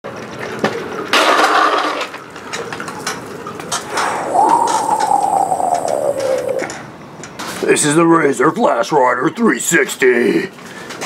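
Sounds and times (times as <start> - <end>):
long falling tone: 3.8 - 6.9.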